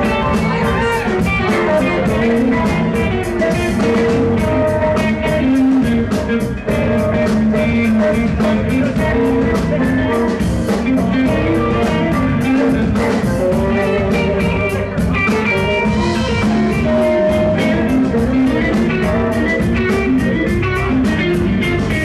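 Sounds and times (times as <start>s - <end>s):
drum kit beat: 0.0s - 22.0s
electric guitar lines: 0.0s - 22.0s.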